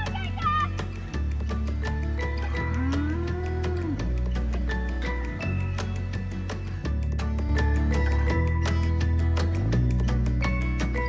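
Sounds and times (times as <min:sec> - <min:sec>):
music with steady beat and bass: 0:00.0 - 0:11.0
cow mooing: 0:02.8 - 0:04.1.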